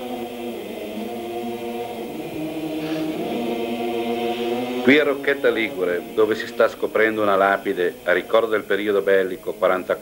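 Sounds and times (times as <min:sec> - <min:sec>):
choir singing slow chords: 0:00.0 - 0:10.0.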